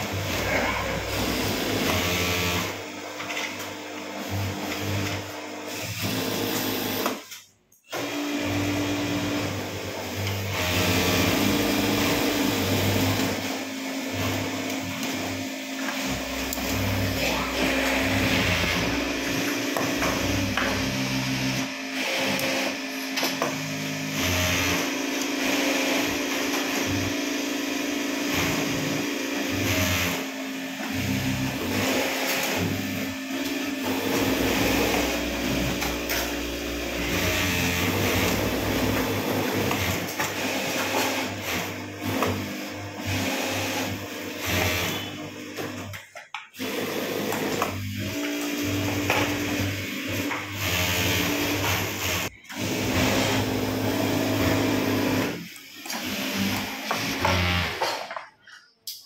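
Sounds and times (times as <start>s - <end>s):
sewing machine running: 0.0s - 58.1s.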